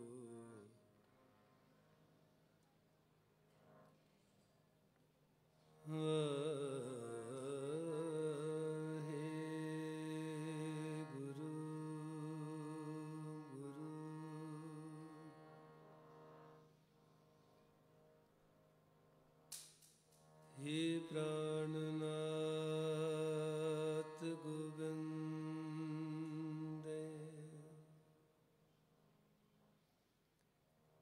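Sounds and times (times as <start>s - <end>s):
man singing long wordless notes: 0.0s - 0.7s, 5.9s - 15.4s, 20.6s - 28.1s
sharp click: 19.5s - 20.6s.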